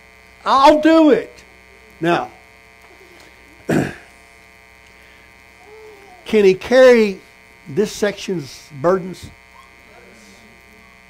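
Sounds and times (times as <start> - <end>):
electrical mains hum: 0.0 - 11.0
man clearing throat: 3.6 - 4.2.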